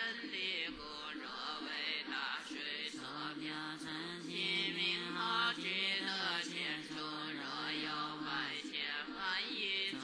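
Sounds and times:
person chanting scripture: 0:00.0 - 0:10.0.

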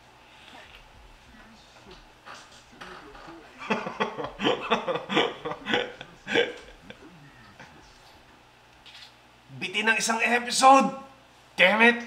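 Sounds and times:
man laughing: 0:02.8 - 0:08.4.

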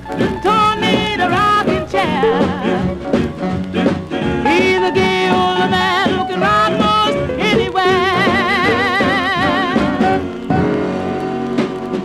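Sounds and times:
jump blues record playing: 0:00.0 - 0:12.0
sliding melody line: 0:00.7 - 0:07.3.

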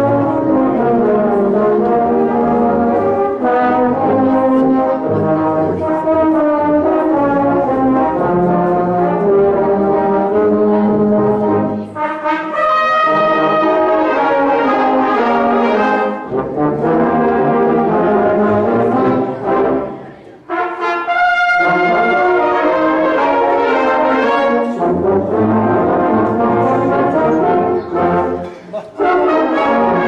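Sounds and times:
brass band playing: 0:00.0 - 0:30.0.

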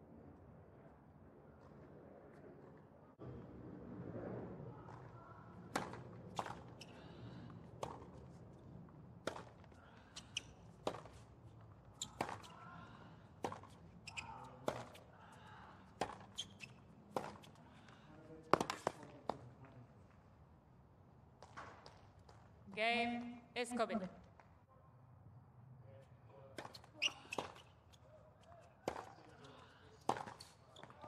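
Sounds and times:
racket hitting tennis ball: 0:05.7 - 0:06.9, 0:07.8 - 0:08.2, 0:09.2 - 0:11.3, 0:12.0 - 0:12.6, 0:13.4 - 0:15.0, 0:16.0 - 0:16.5, 0:17.1 - 0:17.6, 0:26.6 - 0:27.7, 0:28.8 - 0:29.2, 0:30.0 - 0:30.9
ball bouncing on hard court: 0:12.0 - 0:12.6, 0:13.4 - 0:15.0, 0:16.0 - 0:17.6, 0:26.6 - 0:27.7, 0:28.4 - 0:29.3, 0:30.1 - 0:31.0.

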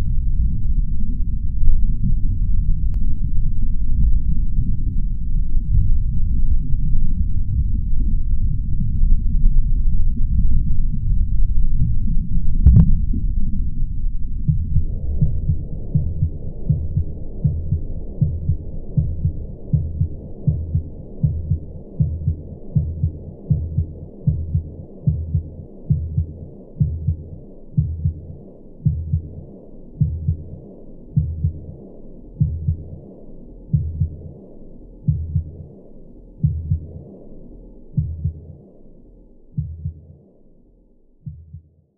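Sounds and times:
dense low rumble: 0:00.0 - 0:38.5
low heartbeat thuds: 0:10.1 - 0:34.4, 0:35.1 - 0:35.7, 0:36.4 - 0:37.1, 0:38.0 - 0:38.6, 0:39.6 - 0:40.2, 0:41.2 - 0:41.8.

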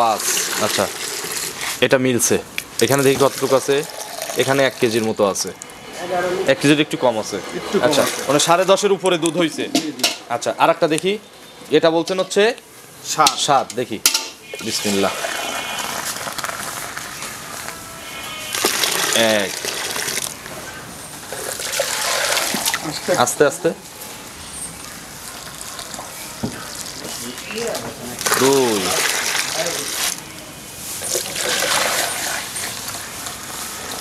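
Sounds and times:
milk pouring and splashing: 0:00.0 - 0:01.8, 0:02.9 - 0:05.0, 0:18.5 - 0:20.4, 0:21.3 - 0:23.0, 0:28.2 - 0:30.2, 0:31.0 - 0:34.0
milk pouring into a mug: 0:03.1 - 0:05.0, 0:21.4 - 0:22.8, 0:31.1 - 0:33.0
metal bucket clank: 0:09.7 - 0:10.3, 0:14.0 - 0:14.8.

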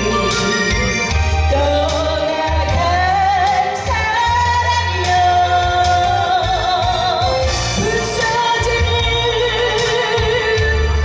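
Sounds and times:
instrumental accompaniment: 0:00.0 - 0:11.0
woman singing with vibrato: 0:00.0 - 0:11.0.

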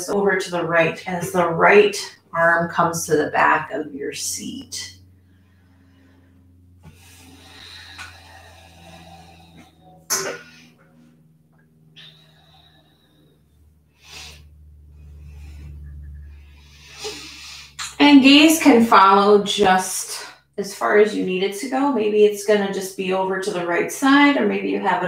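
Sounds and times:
faint low hum: 0:00.0 - 0:25.0
woman breathing slowly: 0:05.0 - 0:17.8.

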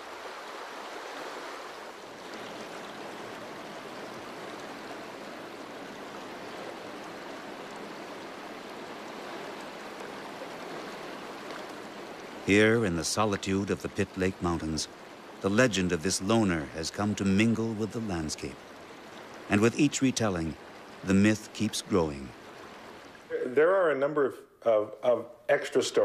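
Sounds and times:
river water rushing: 0:00.0 - 0:23.4.

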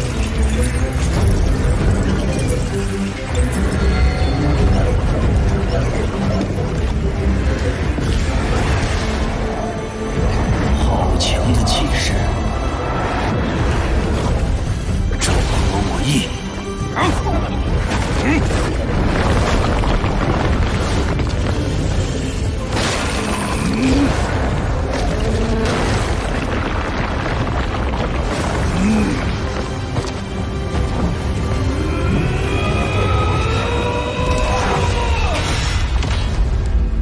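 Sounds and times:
dramatic score: 0:00.0 - 0:37.0
soundtrack music: 0:00.0 - 0:37.0.

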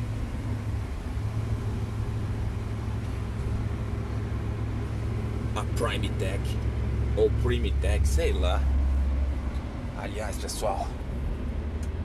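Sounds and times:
car engine drone from inside cabin: 0:00.0 - 0:12.0
road noise: 0:00.0 - 0:12.0.

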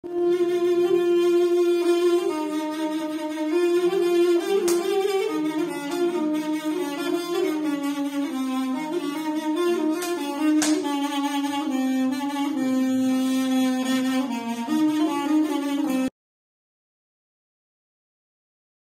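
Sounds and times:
reed wind instrument melody: 0:00.0 - 0:16.1.

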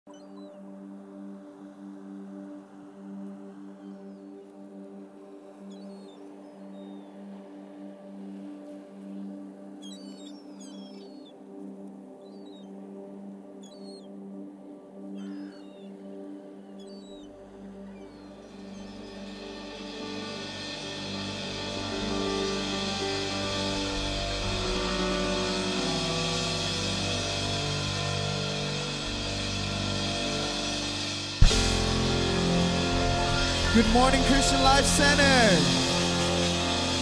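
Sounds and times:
held synth pad chord: 0:17.3 - 0:37.0
low bass: 0:19.3 - 0:37.0.

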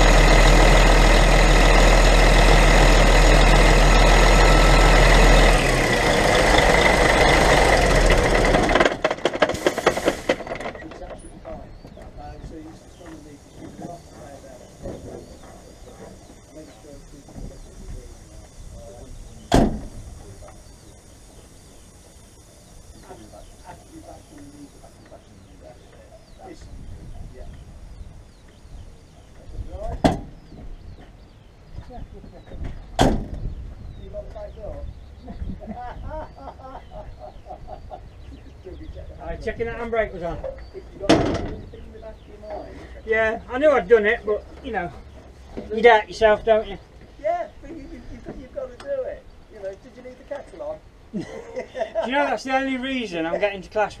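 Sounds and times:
low background rumble: 0:00.0 - 0:09.4
sharp knocks on lorry: 0:08.3 - 0:10.8, 0:19.5 - 0:20.0, 0:29.9 - 0:30.7, 0:32.6 - 0:33.5, 0:41.0 - 0:41.6.

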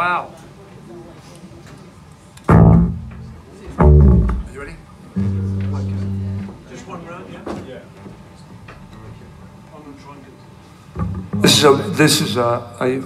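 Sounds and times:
low guitar note: 0:02.5 - 0:06.8, 0:11.0 - 0:12.2
acoustic guitar strums: 0:05.2 - 0:06.6, 0:11.0 - 0:11.9.

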